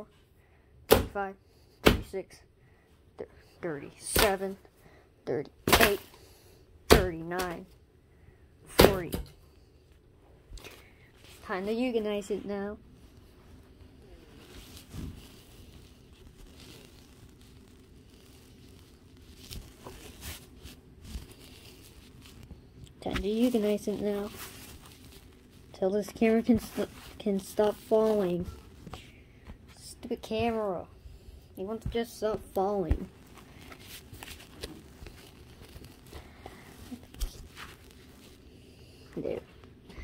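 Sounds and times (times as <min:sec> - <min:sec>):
low steady hum: 0:00.0 - 0:40.0
faint rustling: 0:09.5 - 0:40.0.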